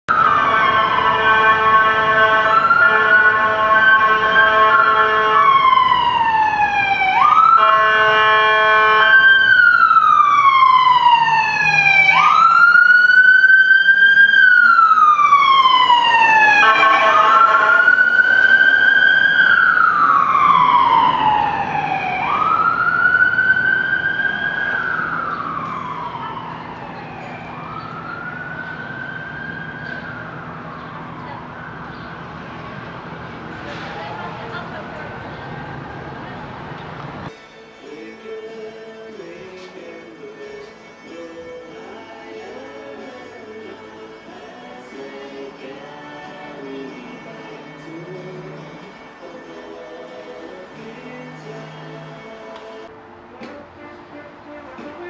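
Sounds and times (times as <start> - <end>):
siren wailing in slow sweeps: 0.1 - 33.1
blaring vehicle horn: 0.3 - 5.8, 7.4 - 9.4, 16.4 - 18.5, 53.2 - 55.0.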